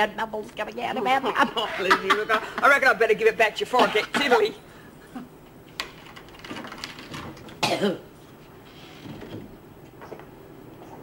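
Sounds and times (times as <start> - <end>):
woman coughing sharply: 3.7 - 4.6, 7.6 - 8.1.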